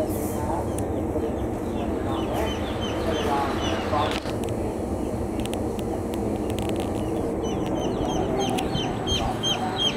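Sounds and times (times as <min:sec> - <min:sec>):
low background rumble: 0:00.0 - 0:09.9
ducklings peeping: 0:00.6 - 0:09.9.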